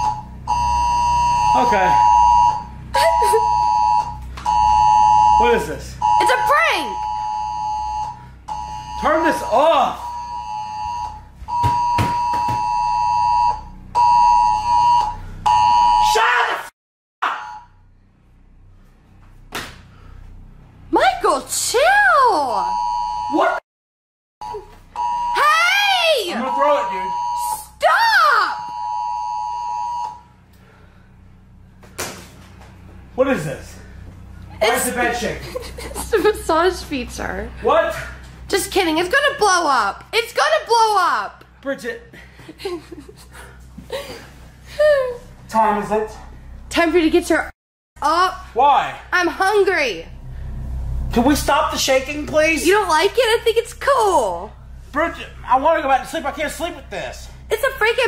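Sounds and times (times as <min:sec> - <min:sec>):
two-tone emergency alert beeps: 0:00.0 - 0:16.1, 0:24.4 - 0:27.8.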